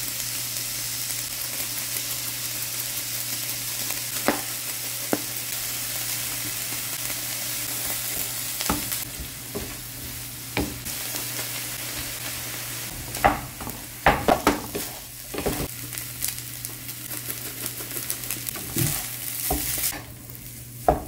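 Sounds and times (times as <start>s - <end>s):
meat sizzling in a frying pan: 0.0s - 21.0s.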